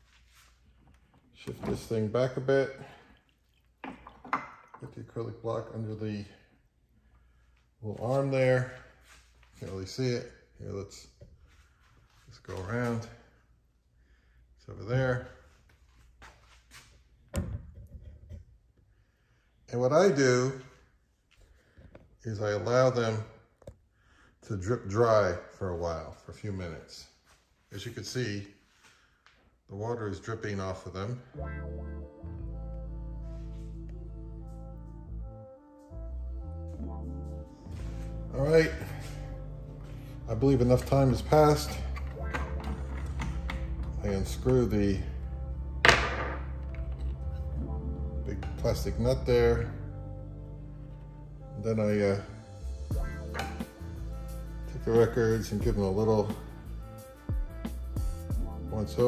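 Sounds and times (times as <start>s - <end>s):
background music: 30.8s - 59.0s.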